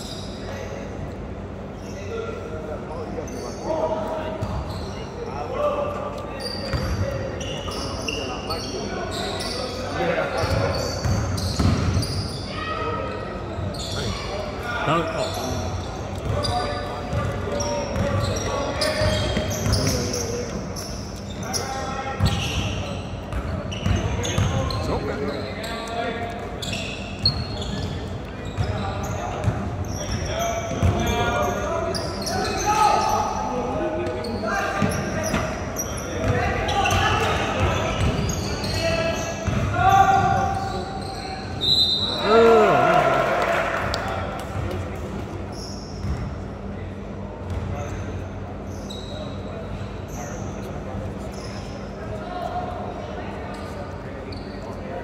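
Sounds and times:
sneaker squeaks: 0:00.0 - 0:01.0, 0:01.6 - 0:42.8, 0:45.4 - 0:46.7, 0:47.4 - 0:55.0
basketball bouncing: 0:11.0 - 0:12.0, 0:39.4 - 0:40.3.

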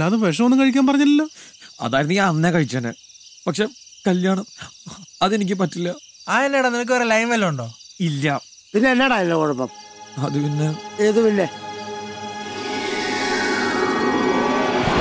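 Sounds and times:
men talking: 0:00.0 - 0:11.7
crickets chirring: 0:00.0 - 0:15.0.

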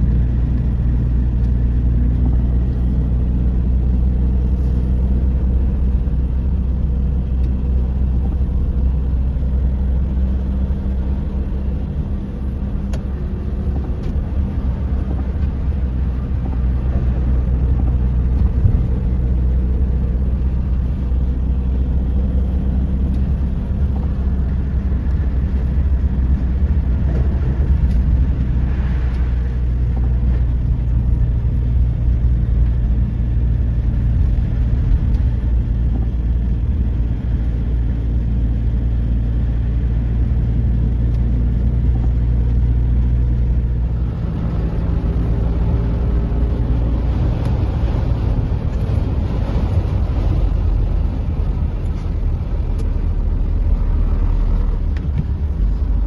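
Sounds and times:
vehicle engine and road noise: 0:00.0 - 0:56.0.

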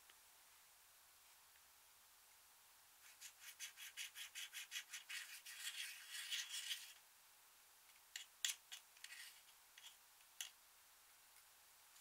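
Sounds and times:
metal tool scratching eyeshadow: 0:03.0 - 0:07.0, 0:08.2 - 0:10.0.

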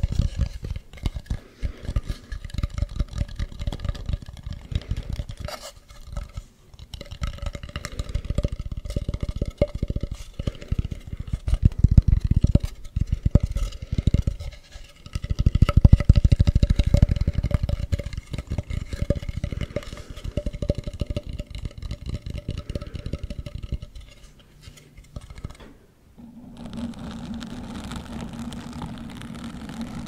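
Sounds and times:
fingers scratching carved mask: 0:00.0 - 0:25.6, 0:26.4 - 0:30.0.

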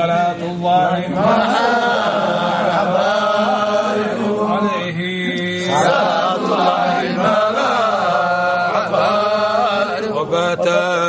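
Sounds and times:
men chanting melodically: 0:00.0 - 0:11.0.

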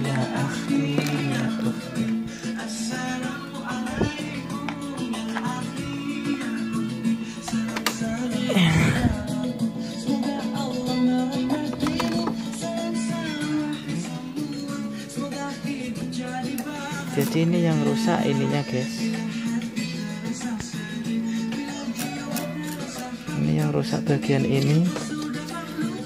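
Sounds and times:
plucked guitar music: 0:00.0 - 0:26.0.

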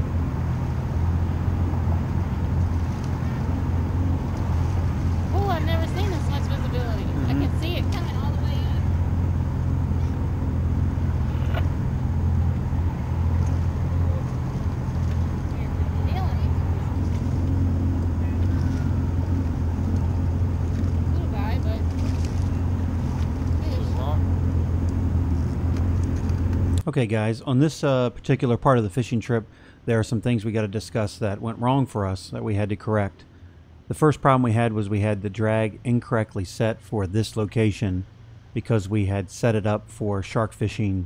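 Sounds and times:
boat engine humming: 0:00.0 - 0:26.8.

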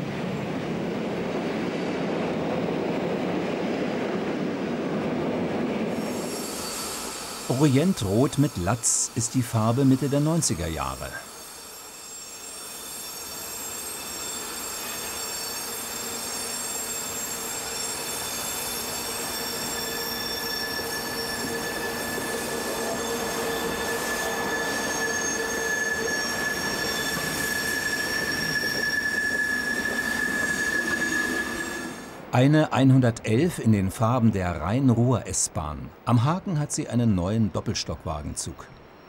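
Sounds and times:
train rolling past: 0:00.0 - 0:36.0
high wheel squeal: 0:05.9 - 0:32.2.

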